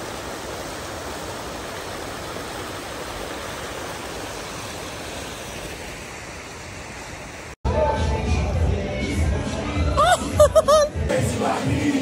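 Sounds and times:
fountain water splashing into pool: 0.0 - 7.6.

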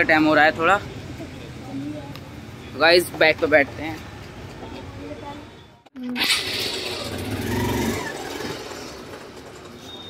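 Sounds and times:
motorcycle engine starting and running: 6.0 - 10.0.

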